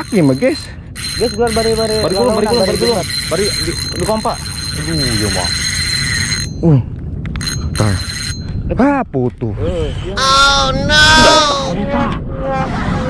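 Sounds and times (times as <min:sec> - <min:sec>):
fishing reel drag buzzing: 0:00.0 - 0:06.6, 0:07.3 - 0:08.5
person exclaiming: 0:10.2 - 0:11.8.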